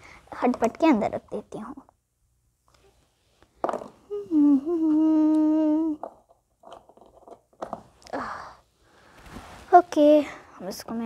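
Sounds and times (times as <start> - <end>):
child humming: 4.0 - 6.0.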